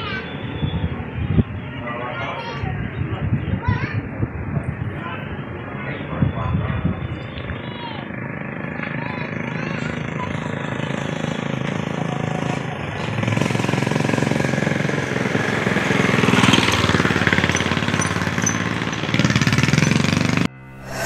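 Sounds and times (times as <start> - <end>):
small engine pulsing: 9.3 - 21.0.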